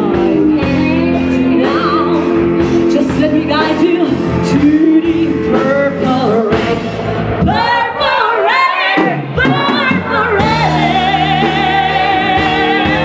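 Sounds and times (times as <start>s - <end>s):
woman singing with vibrato: 0.0s - 6.8s, 7.4s - 13.0s
live rock band: 0.0s - 13.0s.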